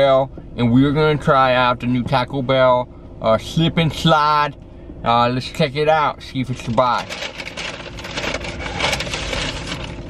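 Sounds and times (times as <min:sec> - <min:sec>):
paper bag rustling and crinkling: 0:06.6 - 0:10.0.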